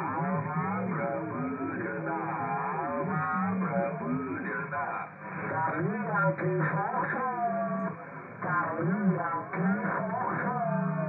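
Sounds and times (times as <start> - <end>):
person speaking over radio: 0.0 - 11.0.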